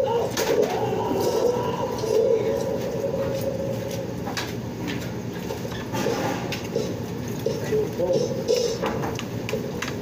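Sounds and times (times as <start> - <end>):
low wavering background murmur: 0.0 - 10.0.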